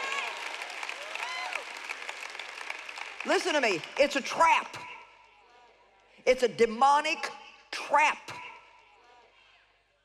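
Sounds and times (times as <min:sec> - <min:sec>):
audience applauding: 0:00.0 - 0:04.0.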